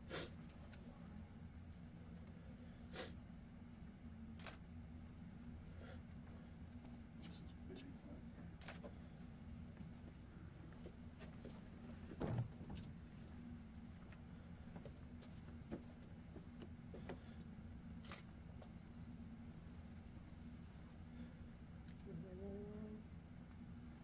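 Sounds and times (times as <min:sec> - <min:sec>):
low steady hum: 0:00.0 - 0:24.0
thump: 0:12.2 - 0:12.8
person murmuring: 0:22.1 - 0:23.0.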